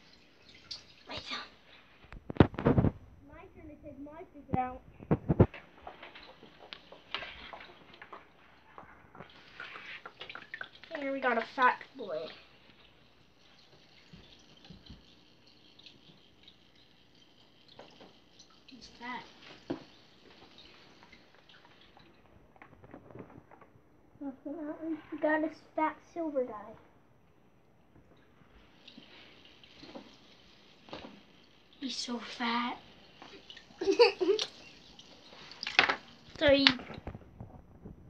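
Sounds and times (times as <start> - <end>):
child talking: 1.1 - 1.6, 3.2 - 4.8, 10.9 - 12.5, 18.7 - 19.4, 24.2 - 26.9, 31.8 - 32.8, 36.3 - 37.0
water splashing in a plastic bucket: 5.0 - 23.5, 28.6 - 37.5.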